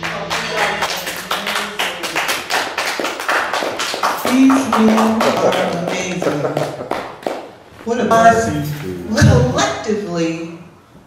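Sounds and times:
audience clapping: 0.0s - 7.6s
person speaking: 7.8s - 9.8s.

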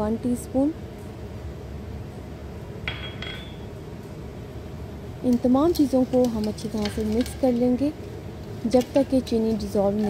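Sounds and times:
faint background hum: 0.0s - 10.0s
ceramic bowl clinking: 2.9s - 3.7s.

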